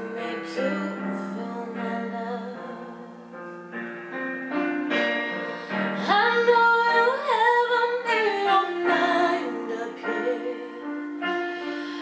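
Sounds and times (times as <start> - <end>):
girl singing: 0.0 - 3.2, 6.0 - 11.1
piano karaoke backing track: 0.0 - 12.0.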